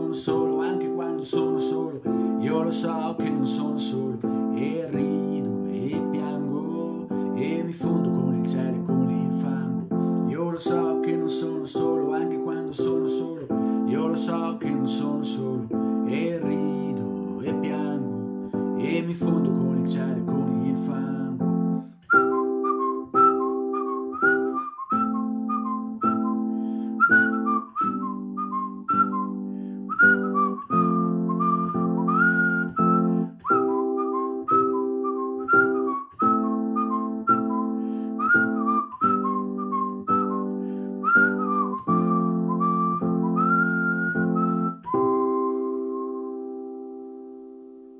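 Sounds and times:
keyboard chords: 0.0 - 47.9
whistled melody: 0.0 - 47.9.

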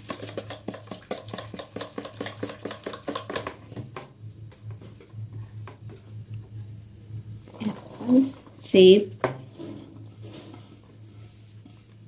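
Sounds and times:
faint low hum: 3.5 - 12.0.

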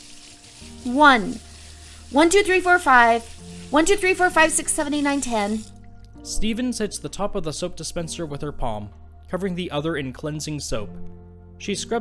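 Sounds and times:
running tap water hiss: 0.0 - 5.9.

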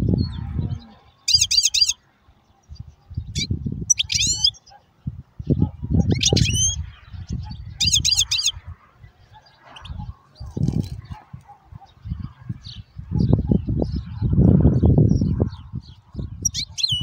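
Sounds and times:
goldfinch twittering: 1.2 - 2.0, 3.2 - 4.7, 6.0 - 8.6.

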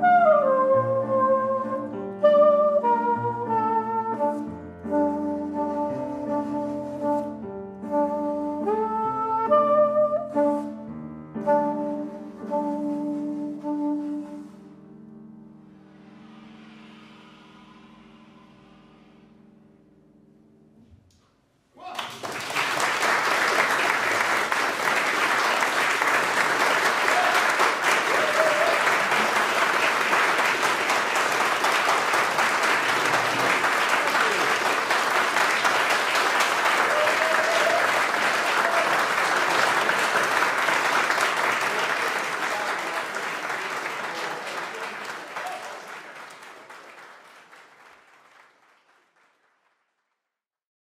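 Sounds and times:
audience applauding: 21.8 - 50.0.

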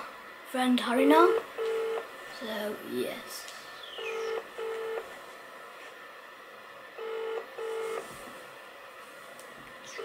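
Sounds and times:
telephone ringback tone: 1.3 - 2.0, 4.0 - 5.0, 7.0 - 8.0.

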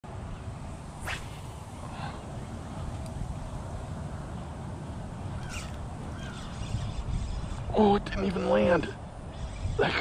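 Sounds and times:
fishing rod whoosh: 0.8 - 2.1.

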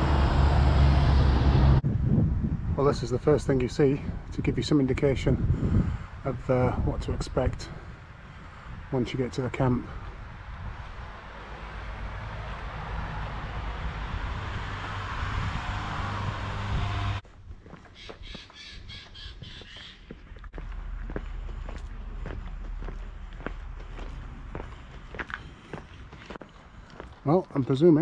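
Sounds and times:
walking footsteps: 17.2 - 28.0
bird calling: 17.9 - 20.4.

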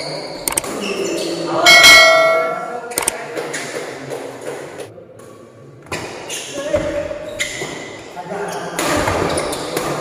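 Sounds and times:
sharp clicks: 0.4 - 0.7, 3.0 - 3.2.

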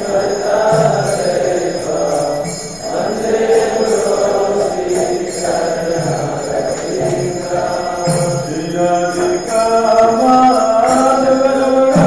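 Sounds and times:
devotional chant singing: 0.0 - 12.0
high ringing: 0.0 - 12.0.

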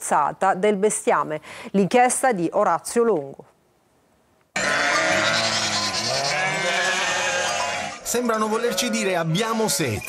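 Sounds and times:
flock of sheep bleating: 4.6 - 10.0.

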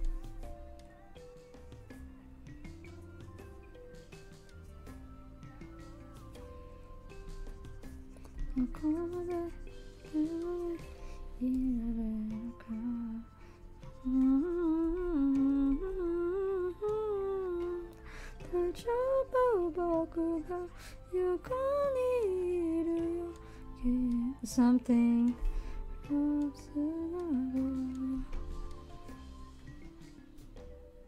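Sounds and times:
soft background music: 0.0 - 31.0
woman humming a tune: 8.3 - 29.8.

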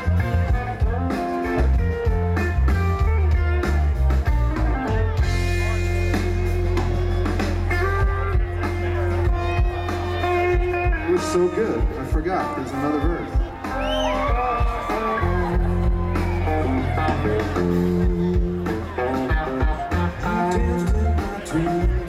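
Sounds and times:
drums: 0.0 - 22.0
electric bass: 0.0 - 22.0
guitar: 0.0 - 22.0
keyboard: 0.0 - 22.0.

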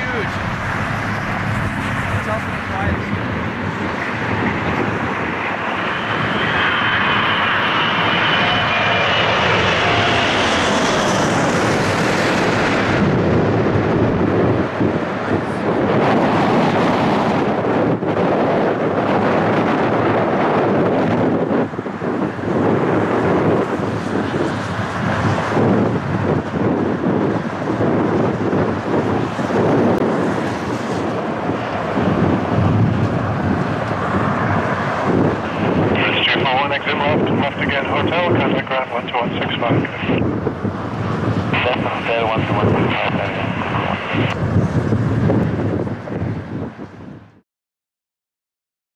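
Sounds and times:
jet engine roar: 0.0 - 47.4
jet engine whine: 0.0 - 47.4.

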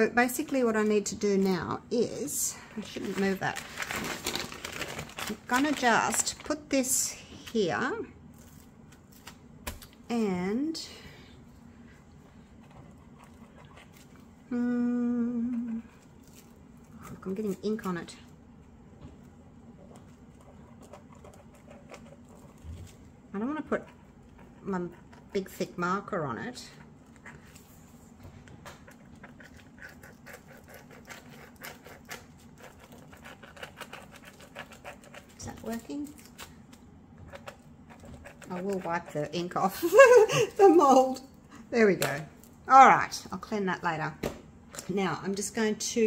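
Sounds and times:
low room hum: 0.0 - 46.0
marker pen scratching on plastic film: 19.8 - 25.5, 28.7 - 36.1, 37.3 - 39.6.

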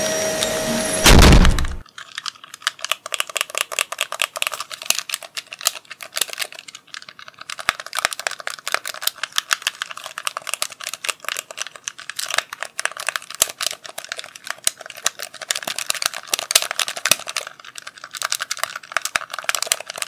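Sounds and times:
fingers tapping and clicking: 1.8 - 20.0.

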